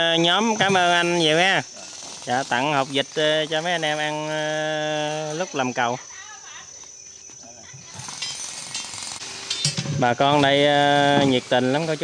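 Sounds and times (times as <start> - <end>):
metallic rattling of rebar and wire: 7.9 - 12.0.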